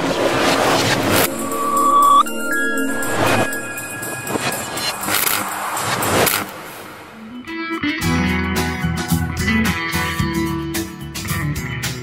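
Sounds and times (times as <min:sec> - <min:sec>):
loud noisy whoosh: 0:00.0 - 0:07.3.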